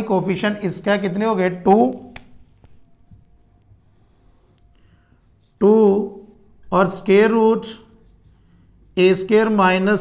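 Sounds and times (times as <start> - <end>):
marker writing on whiteboard: 1.6 - 9.9.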